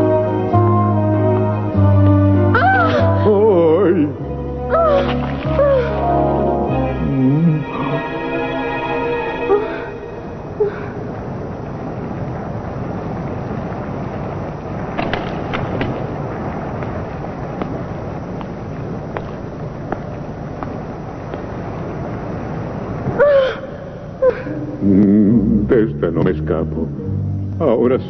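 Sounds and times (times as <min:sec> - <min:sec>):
lava rushing rumble: 0:09.4 - 0:26.8
crackles and pops: 0:10.7 - 0:26.9.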